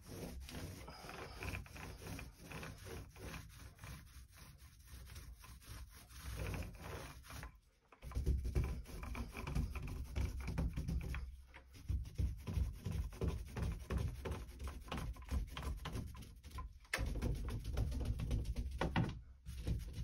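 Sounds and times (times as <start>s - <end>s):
paint roller rubbing over door: 0.0s - 20.0s.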